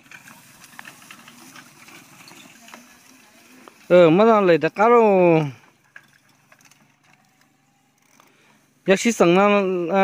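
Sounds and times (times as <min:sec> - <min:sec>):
bicycle tyres rolling on grass: 0:00.0 - 0:10.0.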